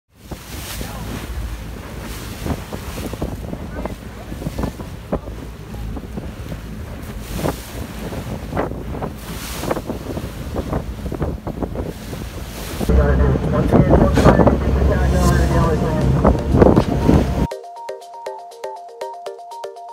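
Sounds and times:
boat engine low rumble: 0.1 - 17.5
waves and boat wake rushing: 0.1 - 17.5
wind buffeting microphone: 0.1 - 17.5.

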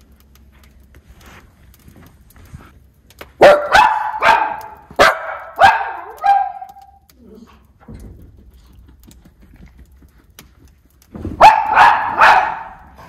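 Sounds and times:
dog barking sharply: 3.4 - 6.8, 11.4 - 13.0.

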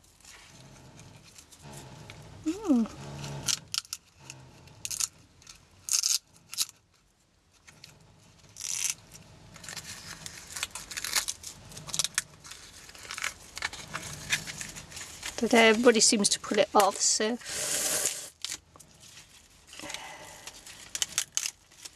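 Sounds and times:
glued paper crackling: 7.6 - 21.9
plastic wrap crinkling: 7.6 - 21.9.

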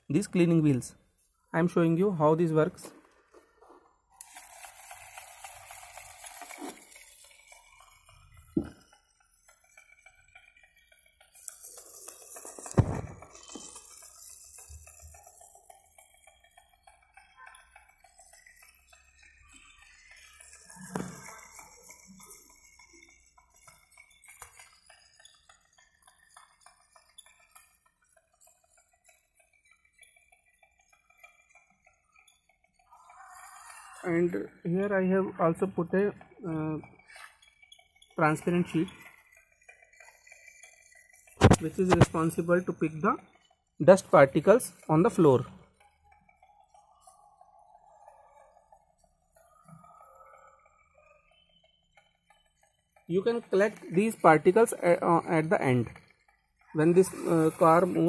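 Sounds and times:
faint clicks and rattles: 0.0 - 58.0
toy car motors running: 0.0 - 58.0.

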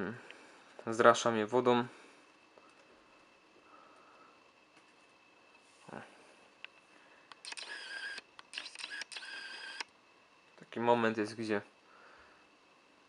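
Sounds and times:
camera lens motor whirring: 7.4 - 9.9.

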